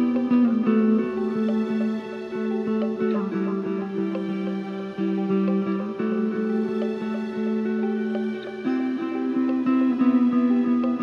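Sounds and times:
picked guitar notes: 0.0 - 11.0
sustained chords: 0.0 - 11.0.

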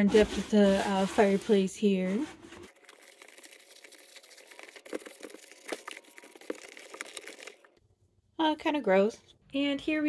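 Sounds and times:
cloth scrubbing plastic panels: 0.0 - 3.4.

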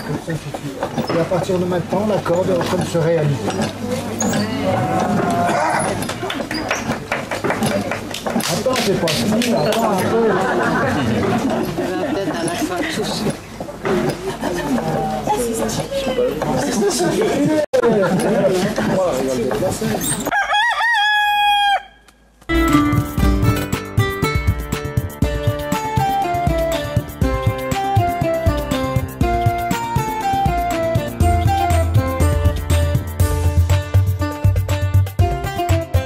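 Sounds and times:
wooden rope-making machine turning: 0.0 - 20.3
people talking: 8.5 - 20.1
rooster crowing: 20.3 - 22.1
plucked guitar music: 22.5 - 36.0.

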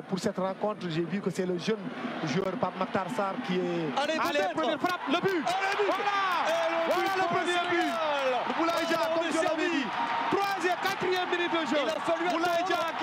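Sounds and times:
man shouting excitedly: 4.2 - 13.0.

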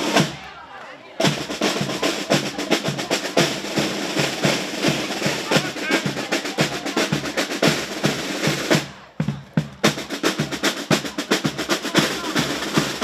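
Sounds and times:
marching snare and bass drums: 0.0 - 13.0.

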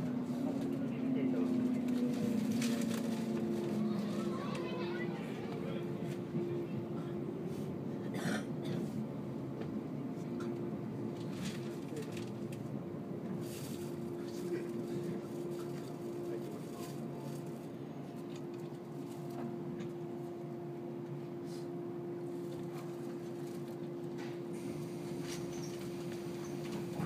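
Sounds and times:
train running rumble and hum: 0.0 - 27.0.

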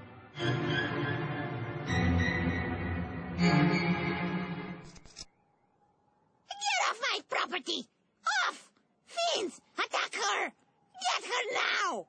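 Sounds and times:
cartoon background music: 0.0 - 4.8.

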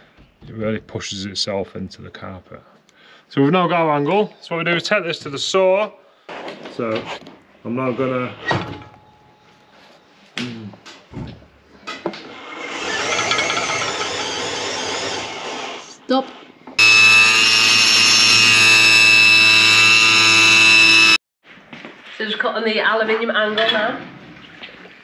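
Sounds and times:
table saw cutting metal: 12.4 - 16.0, 16.8 - 21.2.

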